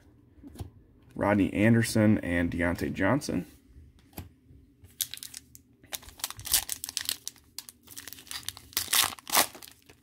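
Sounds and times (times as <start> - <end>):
foil card pack crinkling and tearing: 5.0 - 10.0.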